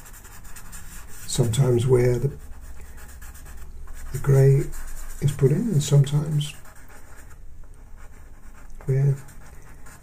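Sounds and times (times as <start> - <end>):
pencil scratching on paper: 0.0 - 10.0.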